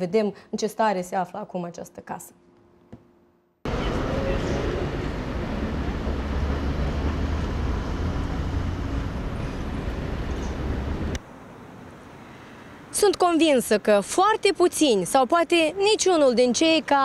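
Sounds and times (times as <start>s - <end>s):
traffic noise with low rumble: 3.7s - 17.0s.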